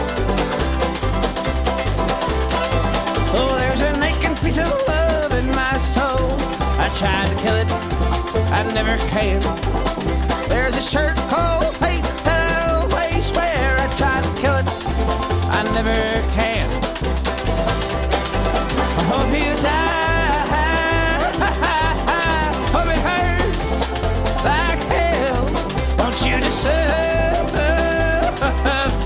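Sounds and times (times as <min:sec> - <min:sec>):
banjo picking: 0:00.0 - 0:29.0
fiddle melody: 0:00.0 - 0:29.0
low bass line: 0:00.0 - 0:29.0.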